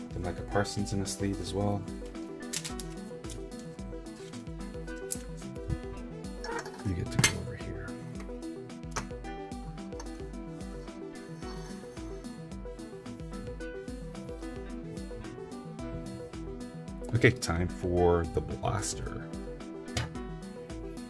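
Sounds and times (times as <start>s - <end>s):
background music: 0.0s - 21.0s
cards clicking in plastic sleeves: 2.0s - 4.4s, 5.0s - 5.4s.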